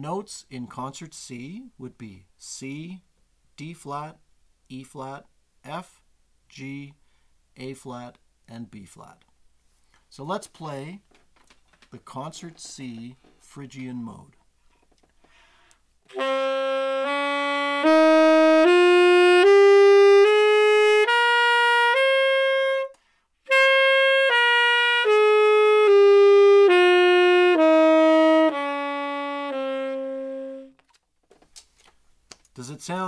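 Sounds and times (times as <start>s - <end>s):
breath: 7.0s - 7.4s, 15.2s - 15.9s, 23.0s - 23.4s
tenor saxophone playing a scale: 16.1s - 30.8s.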